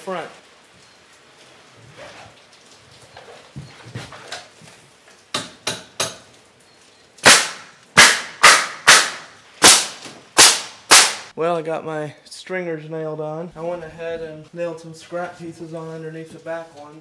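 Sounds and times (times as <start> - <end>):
nail gun shots into wood: 7.2 - 11.3.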